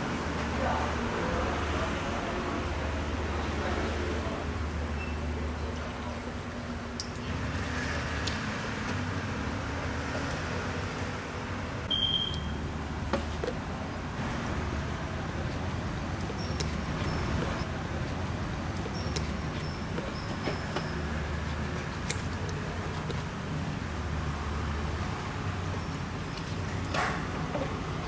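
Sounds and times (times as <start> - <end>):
short high beep: 11.9 - 12.5.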